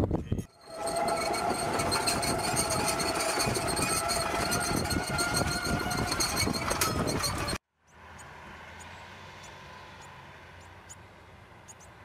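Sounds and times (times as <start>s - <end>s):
vehicle drive whine: 0.3s - 12.0s
vehicle tracks clattering: 0.6s - 7.6s.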